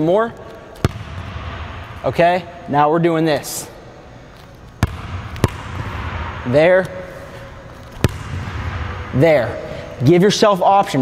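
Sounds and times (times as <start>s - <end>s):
basketball bouncing on hardwood: 0.8s - 1.3s, 4.8s - 6.2s, 8.0s - 8.7s.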